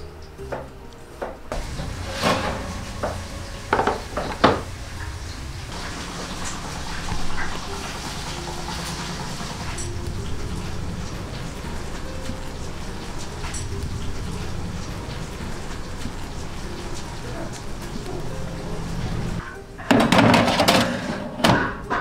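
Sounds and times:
low hum: 0:01.5 - 0:19.5
metal kitchenware clinking: 0:01.5 - 0:22.0.

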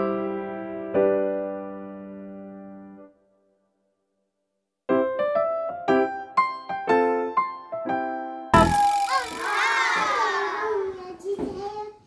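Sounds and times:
excited vocal cry: 0:08.6 - 0:11.0.

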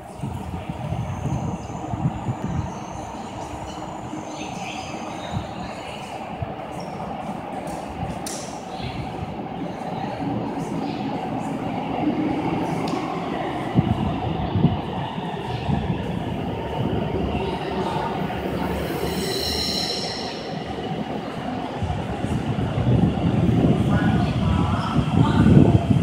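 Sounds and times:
train rumbling in a tunnel: 0:00.0 - 0:26.0
high wheel squeal: 0:18.6 - 0:20.8.

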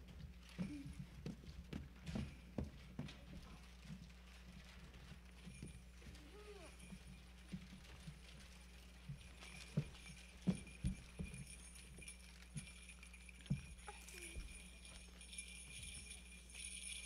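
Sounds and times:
children's footsteps on stage: 0:00.0 - 0:17.0
steady low hum: 0:00.0 - 0:17.0.

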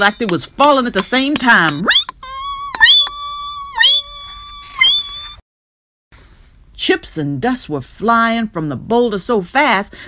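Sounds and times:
person crying out high-pitched: 0:01.8 - 0:05.4.

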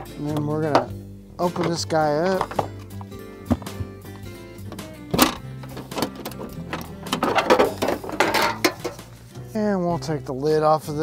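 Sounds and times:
background music: 0:00.0 - 0:11.0
latch click: 0:04.7 - 0:08.0
cover rubbing and scraping: 0:04.7 - 0:09.0.

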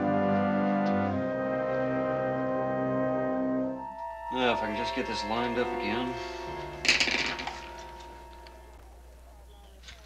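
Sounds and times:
music cue with sharp hit: 0:04.3 - 0:08.7.

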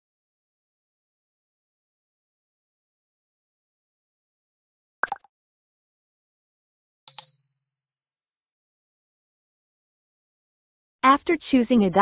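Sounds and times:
bell ding sound effect: 0:07.1 - 0:08.0.

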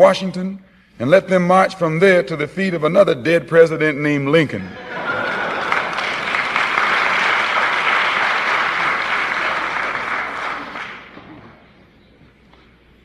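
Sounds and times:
audience applauding: 0:05.0 - 0:11.6.

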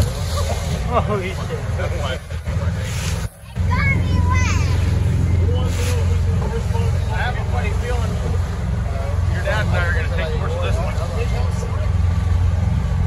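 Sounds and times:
boat engine rumble: 0:00.0 - 0:13.0
voices: 0:00.0 - 0:13.0.

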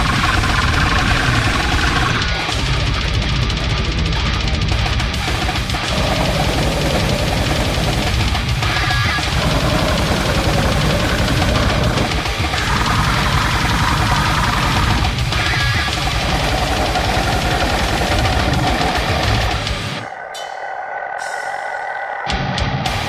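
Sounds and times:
fast kick-drum strokes: 0:00.0 - 0:20.1
heavily distorted guitars: 0:00.0 - 0:23.0.

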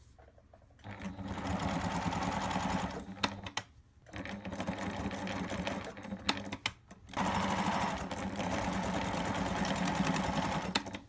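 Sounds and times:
sewing machine clicks: 0:00.8 - 0:11.0
sewing machine stitching: 0:00.8 - 0:11.0.

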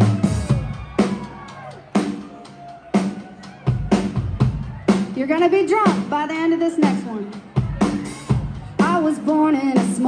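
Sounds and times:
drum kit hits: 0:00.0 - 0:05.2.

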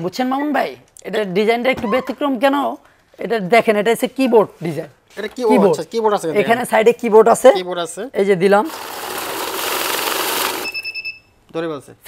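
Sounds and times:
bill counting machine whirring: 0:08.7 - 0:11.0
high electronic beep: 0:10.6 - 0:11.3.

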